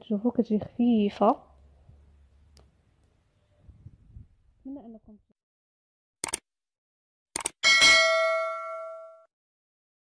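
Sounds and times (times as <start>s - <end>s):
notification bell ding: 7.6s - 9.3s.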